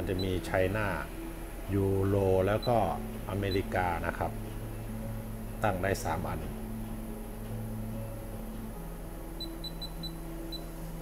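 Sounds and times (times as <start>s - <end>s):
steady low hum: 0.0s - 11.0s
short high beeps: 9.4s - 10.7s.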